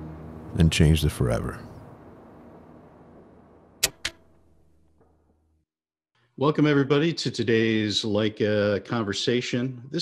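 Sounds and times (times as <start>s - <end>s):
sharp click: 3.8s - 4.4s.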